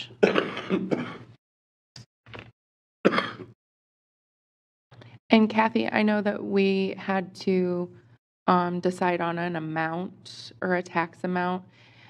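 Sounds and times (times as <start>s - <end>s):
person clearing throat: 0.0s - 1.4s, 3.1s - 3.6s.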